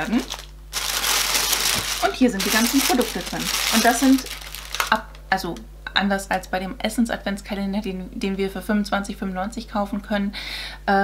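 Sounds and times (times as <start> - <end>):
plastic packaging crinkling: 0.0 - 5.2.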